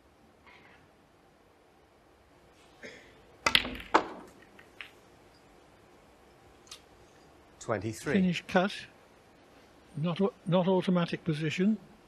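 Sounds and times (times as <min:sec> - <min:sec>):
cue striking cue ball: 0:03.4 - 0:05.0
snooker balls clicking together: 0:03.4 - 0:05.0.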